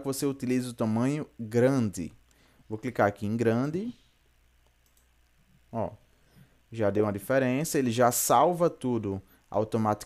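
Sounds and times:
computer mouse click: 0:04.6 - 0:05.4.

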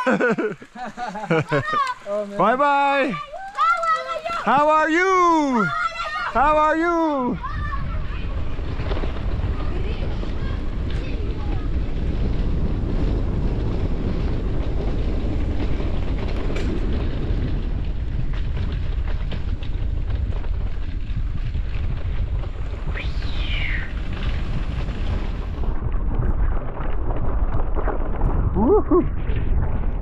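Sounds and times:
bike rattling on rough track: 0:00.0 - 0:30.0
wind rushing over microphone: 0:02.2 - 0:30.0.

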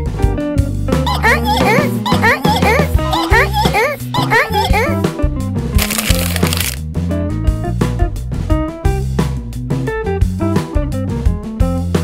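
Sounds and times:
background music with bass line: 0:00.0 - 0:12.0
foil packets crinkling: 0:05.8 - 0:06.8.

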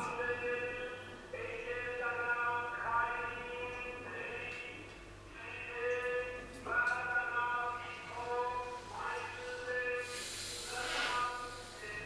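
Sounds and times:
man chanting: 0:00.0 - 0:04.7, 0:05.4 - 0:12.0.

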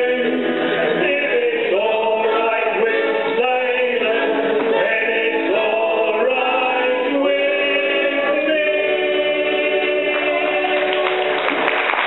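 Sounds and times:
acoustic folk music: 0:00.0 - 0:11.8.

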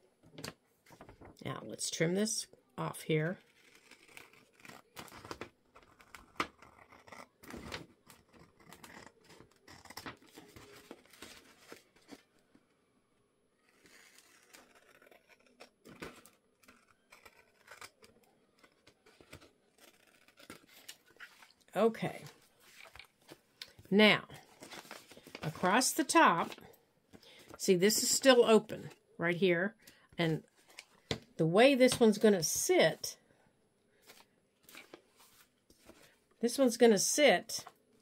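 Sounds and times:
paper rustling: 0:07.5 - 0:12.4, 0:22.2 - 0:26.6, 0:34.0 - 0:36.2
scissors snipping paper: 0:13.7 - 0:21.2.

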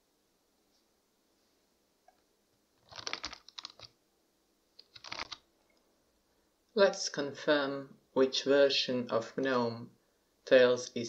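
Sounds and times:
computer keyboard typing: 0:02.8 - 0:03.9, 0:04.8 - 0:05.4.

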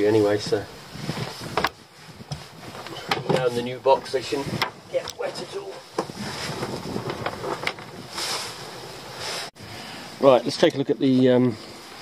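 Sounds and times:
wind on microphone: 0:00.0 - 0:09.4
rustling and light knocks: 0:00.4 - 0:08.6.

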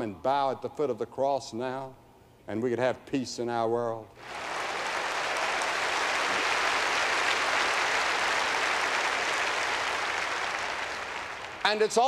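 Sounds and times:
audience applause: 0:04.2 - 0:11.9.

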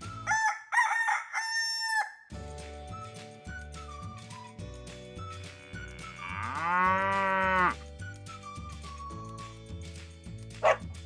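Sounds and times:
rooster crowing: 0:00.3 - 0:02.2.

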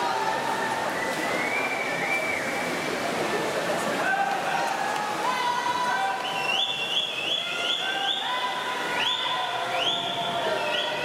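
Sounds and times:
crowd cheering and yelling: 0:00.0 - 0:11.0.

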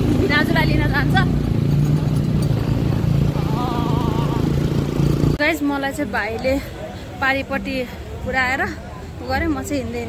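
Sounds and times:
motorcycle engine running: 0:00.0 - 0:05.5.

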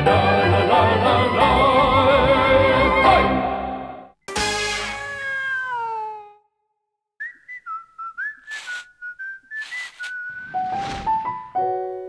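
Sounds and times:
short whistled tune: 0:07.2 - 0:11.4
brief hiss: 0:08.4 - 0:08.9, 0:09.6 - 0:11.4.

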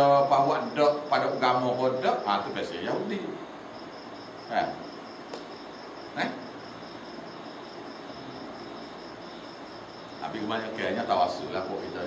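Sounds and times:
insect chirping: 0:00.0 - 0:12.0.

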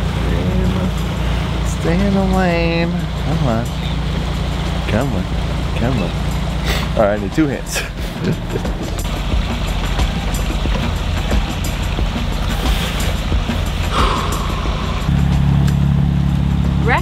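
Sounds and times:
diesel engine droning: 0:00.0 - 0:12.3, 0:13.5 - 0:17.0.

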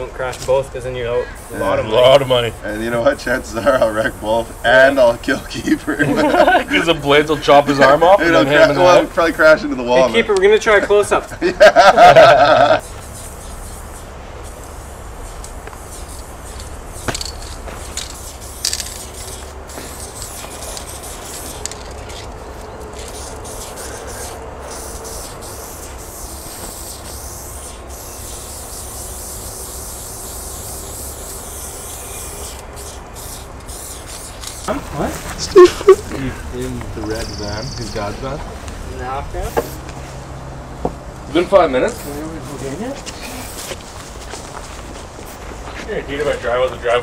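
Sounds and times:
spray paint can hissing: 0:01.3 - 0:37.4, 0:39.4 - 0:39.9, 0:41.9 - 0:45.5
man laughing loudly: 0:05.7 - 0:07.1, 0:09.9 - 0:12.9, 0:35.4 - 0:36.5.

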